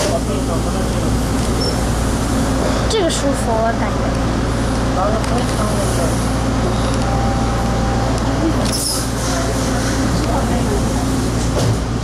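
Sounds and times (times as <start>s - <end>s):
passengers' voices: 0.0s - 12.0s
subway train humming: 0.0s - 12.0s.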